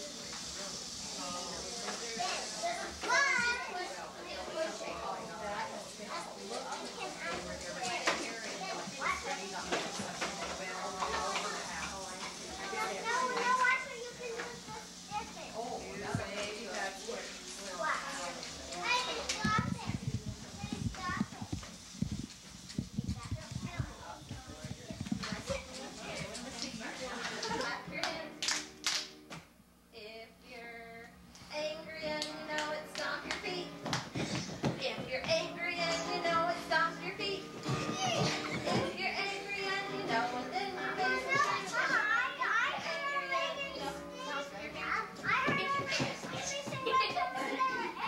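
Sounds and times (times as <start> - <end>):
children playing: 0.0 - 28.8, 31.5 - 48.0.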